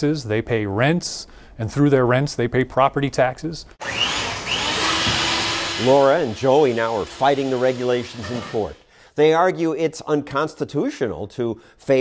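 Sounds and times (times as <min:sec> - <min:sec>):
electric hand mixer whirring: 0:03.8 - 0:08.9.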